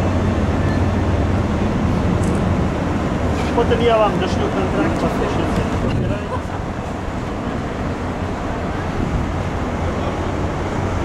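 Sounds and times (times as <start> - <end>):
wind on microphone: 5.5 - 11.0.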